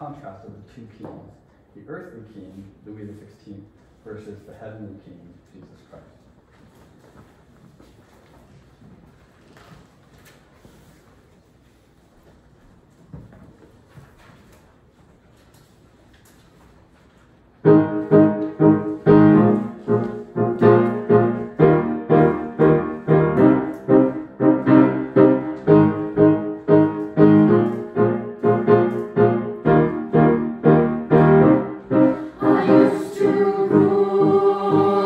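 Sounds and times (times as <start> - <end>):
choir singing held notes: 17.6 - 35.0
piano playing repeated chords: 17.6 - 35.0.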